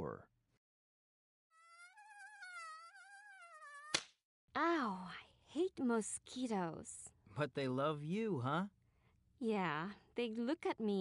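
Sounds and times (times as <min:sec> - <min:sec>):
mosquito buzzing: 0:01.5 - 0:04.1.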